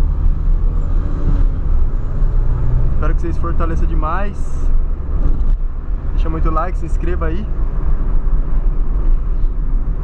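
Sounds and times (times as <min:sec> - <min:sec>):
car engine and road noise from inside: 0:00.0 - 0:10.0.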